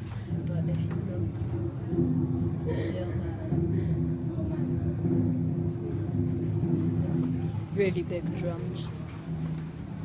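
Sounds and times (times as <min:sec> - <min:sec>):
muffled drums rumbling: 0:00.0 - 0:10.0.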